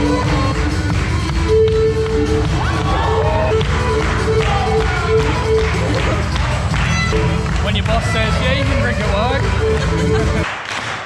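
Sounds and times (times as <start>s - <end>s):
folk band playing dance tune: 0.0s - 10.5s.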